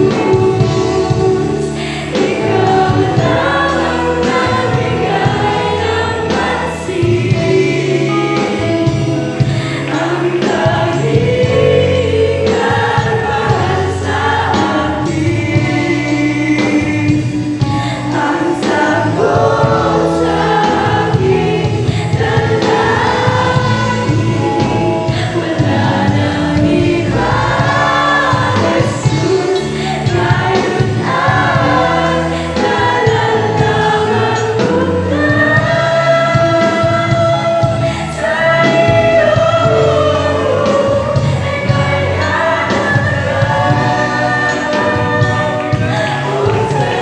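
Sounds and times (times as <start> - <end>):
choir singing gospel song: 0.0 - 47.0
instrumental backing: 0.0 - 47.0.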